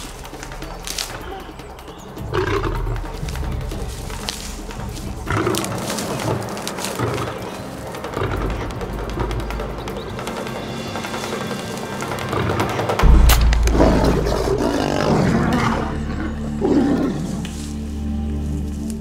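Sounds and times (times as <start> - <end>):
tense background music: 0.0 - 19.0
lion growling and roaring: 2.2 - 10.0, 12.2 - 17.7
deep boom: 13.0 - 16.6.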